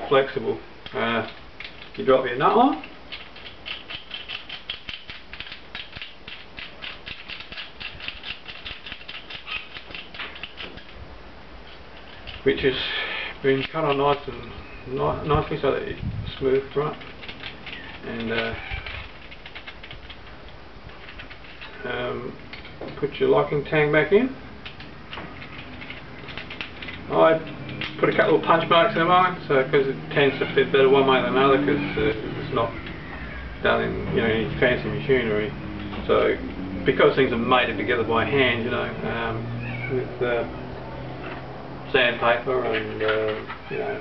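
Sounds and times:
metallic clicks and scraping: 0.8 - 2.2, 2.8 - 11.0, 11.6 - 12.7, 15.5 - 21.8, 22.4 - 23.1, 24.6 - 29.0, 42.6 - 43.9
metal nut clicking on threads: 2.8 - 11.0.

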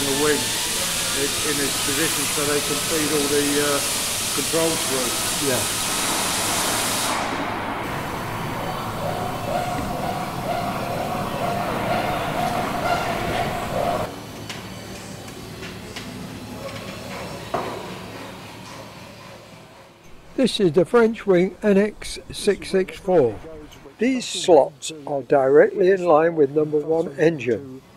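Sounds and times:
air hissing: 0.0 - 14.1
pneumatic tool whine: 0.0 - 14.1.

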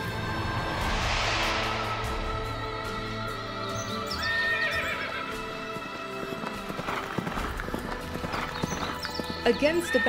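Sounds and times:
background music: 0.0 - 10.0
horse whinnying: 4.2 - 5.3
galloping hoofbeats: 5.5 - 10.0.

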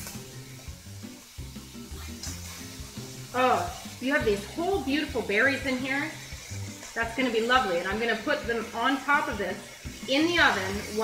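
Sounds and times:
background music with bass: 0.0 - 8.0
chicken sizzling on grill: 0.0 - 11.0.

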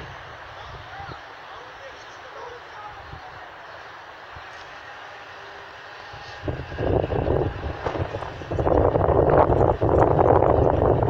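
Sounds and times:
wind buffeting microphone: 0.0 - 1.4, 6.0 - 11.0.

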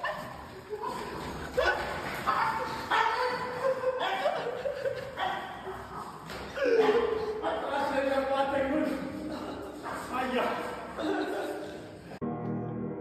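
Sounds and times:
people laughing: 0.0 - 12.2.

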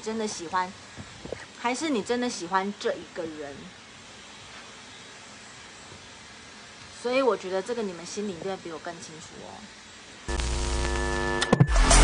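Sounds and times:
room noise hiss: 0.0 - 11.5.

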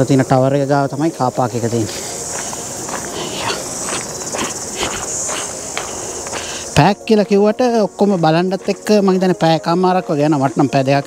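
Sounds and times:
high-pitched insect chorus: 0.0 - 11.0
footsteps on gravel: 1.6 - 10.8.

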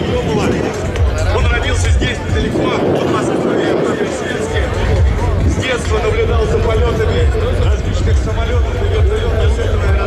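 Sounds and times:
faint announcer voice: 0.0 - 10.0
jet engines roaring overhead: 0.0 - 10.0.

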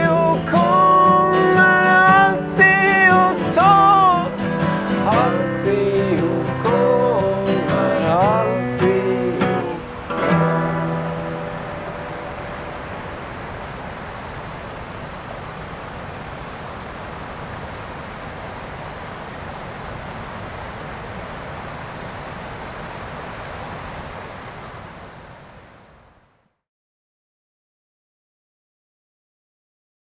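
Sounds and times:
river water rushing over rocks: 0.0 - 26.4.

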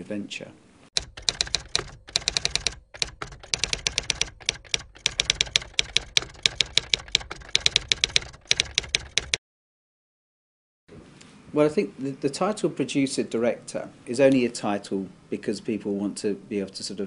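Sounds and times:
typewriter keystrokes clacking: 1.0 - 9.4.

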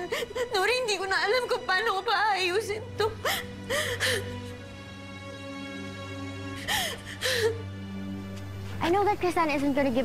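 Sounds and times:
young woman crying: 0.0 - 1.4, 2.7 - 4.8, 6.4 - 7.8
sustained background music chords: 0.0 - 10.0.

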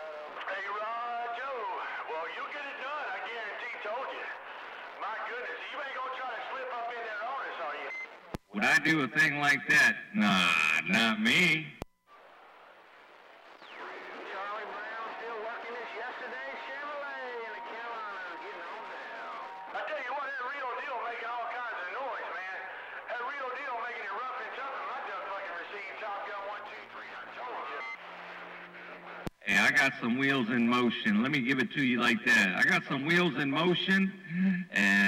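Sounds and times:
garbled voices over radio speaker: 0.0 - 11.8, 13.6 - 35.0
steady radio whistle: 12.1 - 23.1, 24.8 - 29.9.

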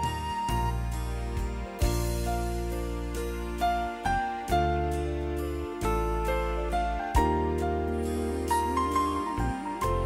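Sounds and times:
electronic keyboard chords: 0.0 - 10.0
keyboard melody line: 0.0 - 10.0.

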